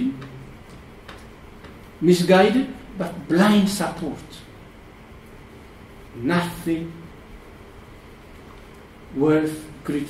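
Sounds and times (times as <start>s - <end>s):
man talking over microphone: 2.0s - 4.5s, 6.2s - 7.1s, 9.1s - 10.0s.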